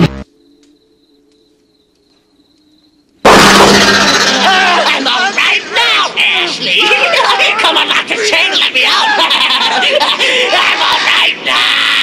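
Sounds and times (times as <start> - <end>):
shrill screaming: 4.3 - 12.0
cackling laughter: 6.8 - 11.4.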